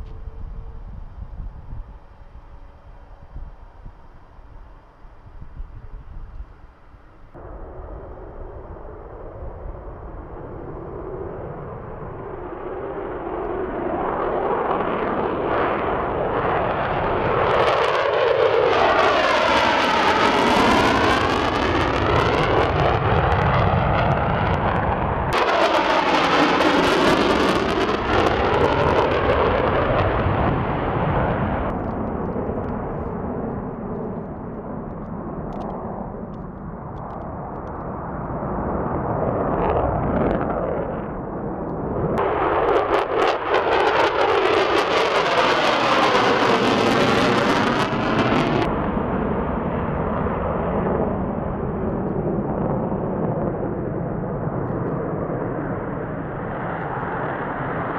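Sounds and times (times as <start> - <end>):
jet aircraft passing overhead: 0.0 - 57.9.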